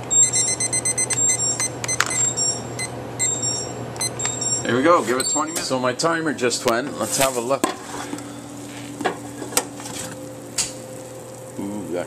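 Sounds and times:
kitchen timer beeping: 0.0 - 5.6.

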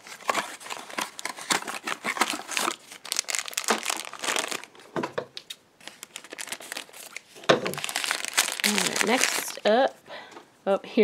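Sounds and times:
scissors cutting plastic: 0.0 - 2.9
wrapper tearing: 0.0 - 4.9, 5.5 - 9.7
plastic wrapper crinkling: 0.0 - 9.9.

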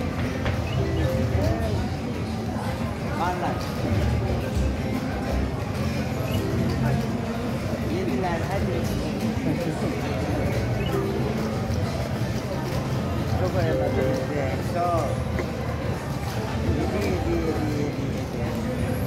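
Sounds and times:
chatter of voices: 0.0 - 19.0.

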